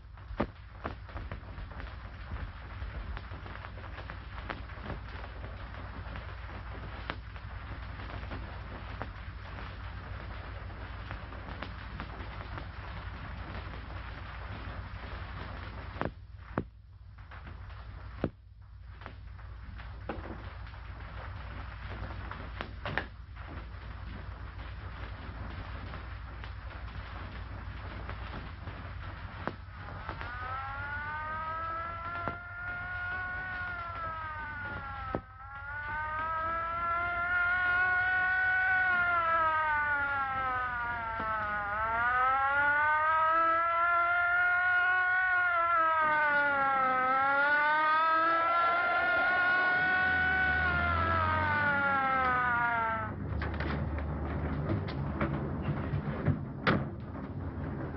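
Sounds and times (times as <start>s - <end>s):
steady low hum: 0.0s - 47.3s, 48.0s - 57.9s
police siren wailing: 23.6s - 55.8s.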